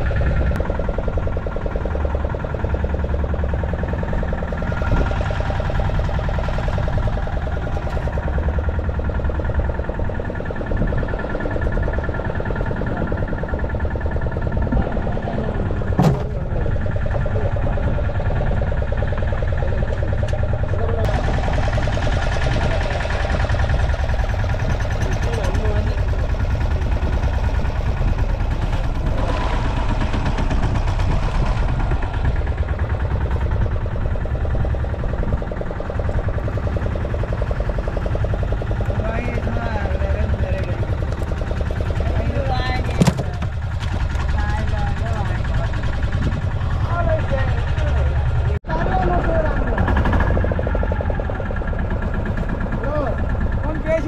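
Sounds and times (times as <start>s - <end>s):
boat engine running: 0.0s - 54.0s.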